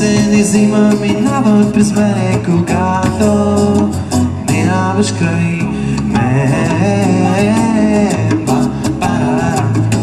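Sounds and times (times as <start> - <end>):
electric bass guitar: 0.0 - 10.0
hand drum: 0.0 - 10.0
person singing: 0.0 - 10.0
strummed acoustic guitar: 0.0 - 10.0.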